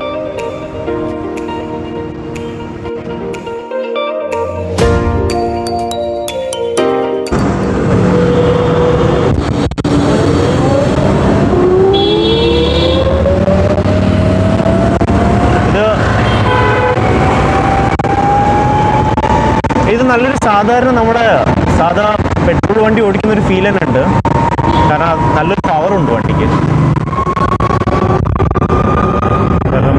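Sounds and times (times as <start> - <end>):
road and wind noise: 0.0 - 3.8, 6.5 - 29.9
vehicle horn: 11.9 - 13.2, 16.2 - 17.1.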